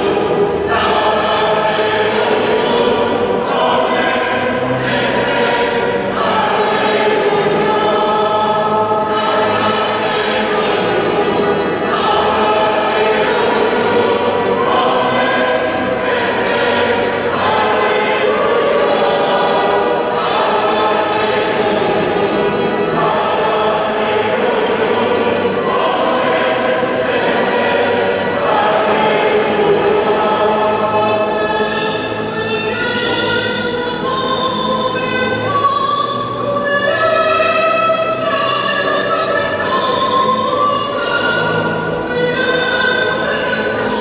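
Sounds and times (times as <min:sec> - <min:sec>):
choir singing held notes: 0:00.0 - 0:44.0.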